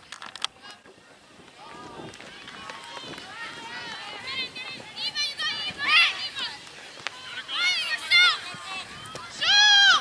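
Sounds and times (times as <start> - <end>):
spectators shouting and cheering: 0.6 - 10.0.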